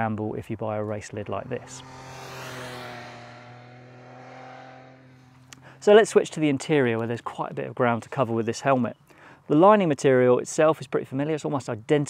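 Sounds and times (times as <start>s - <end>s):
motorcycle engine passing: 1.4s - 6.1s.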